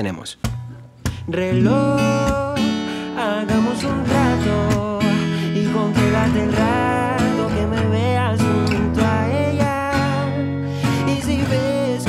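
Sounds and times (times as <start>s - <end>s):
acoustic guitar strummed softly: 0.4s - 12.0s
man singing: 1.1s - 12.0s.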